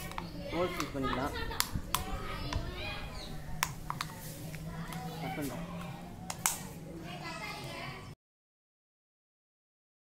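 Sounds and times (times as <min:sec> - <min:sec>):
plastic bottle clicks: 0:00.0 - 0:02.6, 0:03.6 - 0:04.2, 0:06.3 - 0:06.6
children's voices: 0:00.0 - 0:08.2.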